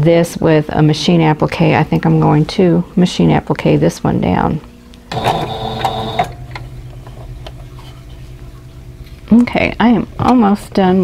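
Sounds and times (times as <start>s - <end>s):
sewing machine humming: 5.1s - 6.5s.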